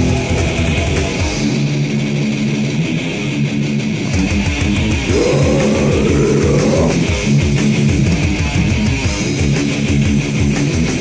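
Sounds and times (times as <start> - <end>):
distorted electric guitars riff: 0.0 - 11.0.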